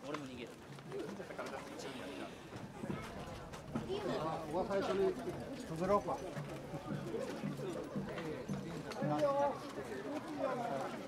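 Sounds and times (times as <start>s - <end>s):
people talking overlapping: 0.0s - 11.0s.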